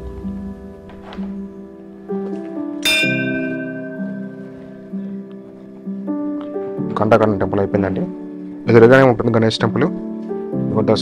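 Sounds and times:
background music: 0:00.0 - 0:11.0
temple bell ringing: 0:02.8 - 0:05.3.

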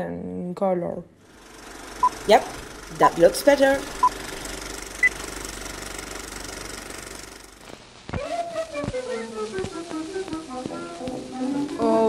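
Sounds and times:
film projector clattering: 0:01.2 - 0:07.7.

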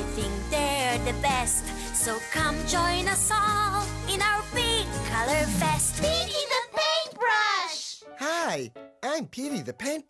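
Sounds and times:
cartoon theme backing music: 0:00.0 - 0:10.0.

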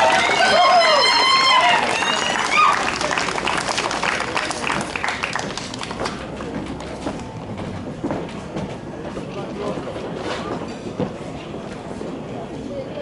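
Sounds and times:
audience applauding: 0:00.0 - 0:06.3
crowd murmur: 0:00.0 - 0:13.0.

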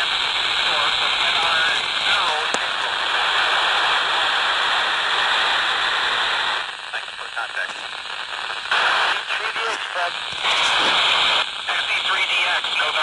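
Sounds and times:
faint garbled voice over radio: 0:00.0 - 0:05.4, 0:06.2 - 0:13.0
radio static hiss: 0:00.0 - 0:13.0.

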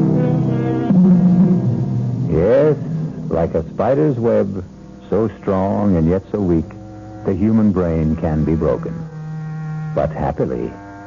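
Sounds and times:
low sustained music underscore: 0:00.0 - 0:11.0
man narrating: 0:02.3 - 0:09.0, 0:10.0 - 0:10.8.

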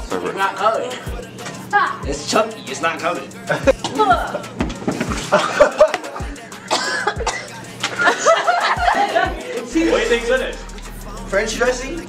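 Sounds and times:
background music: 0:00.0 - 0:12.0
person coughing and gagging: 0:03.5 - 0:09.5.

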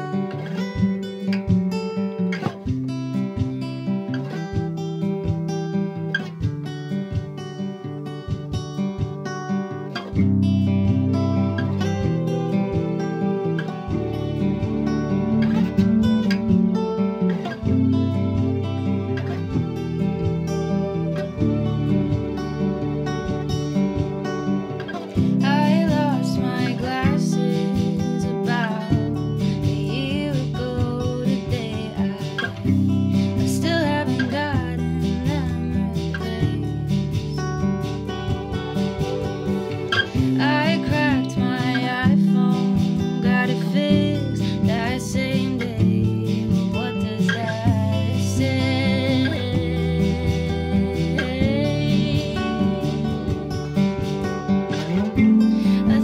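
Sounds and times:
acoustic guitar strumming: 0:00.0 - 0:56.0
woman singing: 0:25.0 - 0:37.4, 0:39.9 - 0:53.9, 0:54.8 - 0:56.0.

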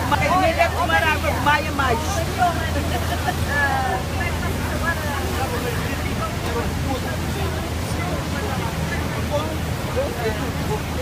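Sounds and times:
boat motor humming: 0:00.0 - 0:11.0
passengers chattering: 0:00.0 - 0:11.0
whitewater rushing: 0:00.0 - 0:11.0.

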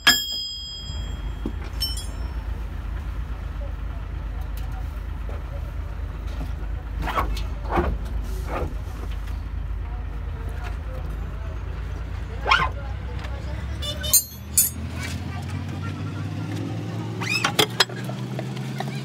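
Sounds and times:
low motor rumble: 0:00.2 - 0:19.0.

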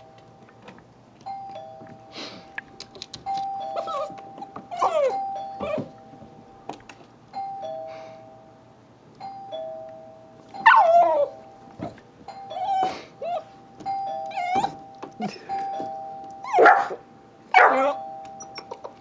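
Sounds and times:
two-tone doorbell chime: 0:01.2 - 0:02.2, 0:03.3 - 0:06.6, 0:07.3 - 0:16.7, 0:17.6 - 0:18.8
puppy barking high-pitched: 0:10.6 - 0:11.4, 0:16.5 - 0:18.0.

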